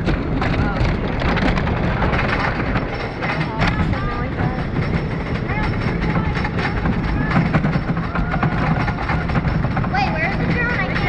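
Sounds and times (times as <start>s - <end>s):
lift chain clicking and clanking: 0.0s - 11.0s
roller coaster rumble: 0.0s - 11.0s.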